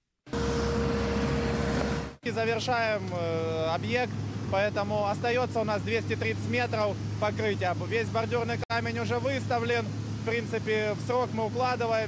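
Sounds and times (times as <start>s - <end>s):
held droning tone: 0.3s - 2.2s
vehicle engines running: 0.3s - 12.0s.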